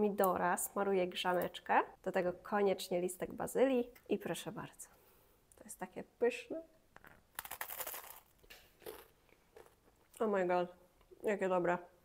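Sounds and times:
crunching bite into toast: 7.3s - 9.8s.

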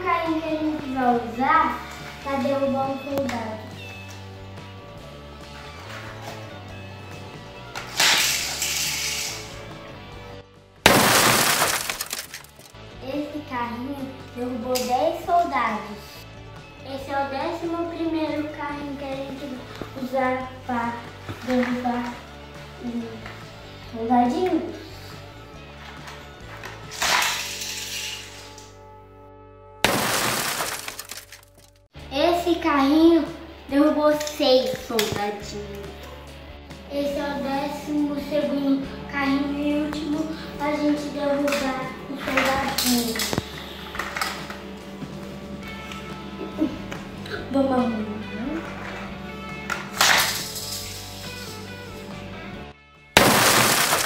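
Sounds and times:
background music: 0.0s - 54.0s
crash and shatter: 7.9s - 9.5s, 10.9s - 12.8s, 26.6s - 28.6s, 29.8s - 31.7s, 49.9s - 51.6s, 53.2s - 54.0s.

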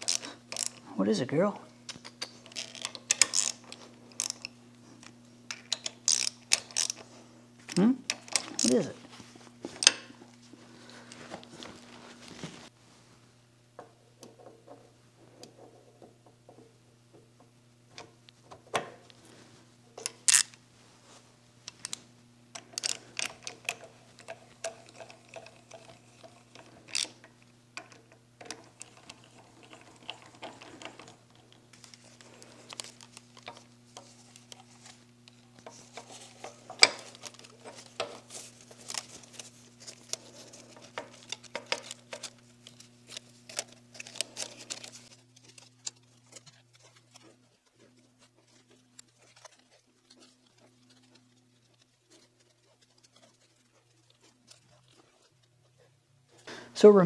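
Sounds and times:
small metal parts clicking: 0.0s - 0.8s, 1.9s - 4.6s, 5.5s - 7.0s, 7.7s - 8.9s, 21.7s - 47.4s.

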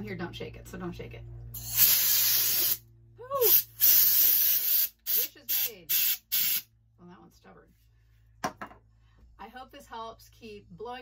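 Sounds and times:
compressed air spray bursts: 1.6s - 2.8s, 3.4s - 6.7s.

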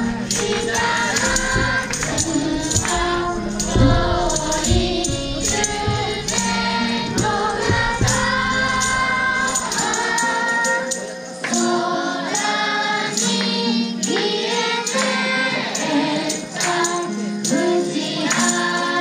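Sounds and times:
amplified backing track: 0.0s - 11.8s
children singing: 0.0s - 19.0s
percussion: 0.0s - 19.0s.

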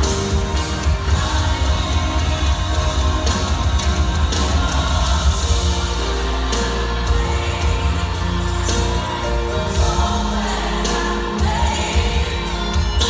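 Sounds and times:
gospel worship singing: 0.0s - 13.0s
steady bass line: 0.0s - 13.0s.

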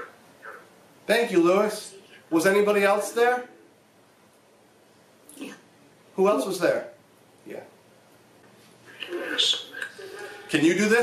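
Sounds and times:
low steady hiss: 0.0s - 11.0s.

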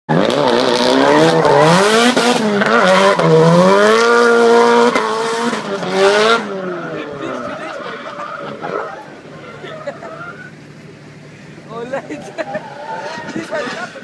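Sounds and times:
car engine revving: 0.1s - 14.0s
tyres squealing: 6.4s - 14.0s.

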